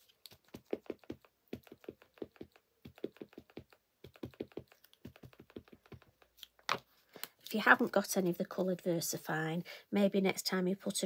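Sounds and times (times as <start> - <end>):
ink pad tapping on stamp: 0.7 - 6.2.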